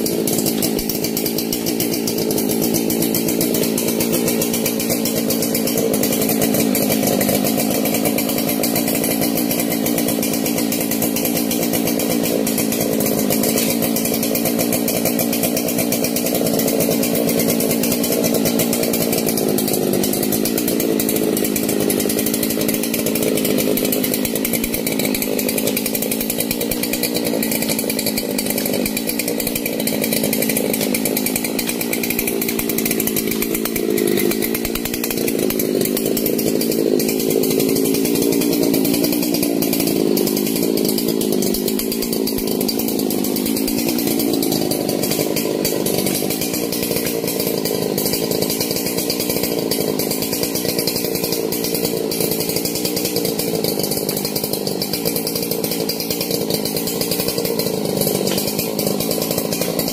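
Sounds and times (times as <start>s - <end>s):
chainsaw engine running: 0.0s - 59.9s.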